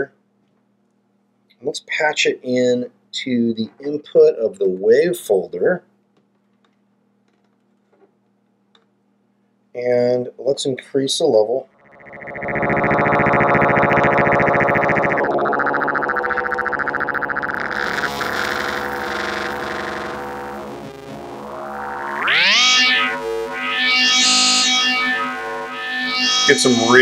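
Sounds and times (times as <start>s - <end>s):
buzzy metallic synth drone: 11.8s - 27.0s.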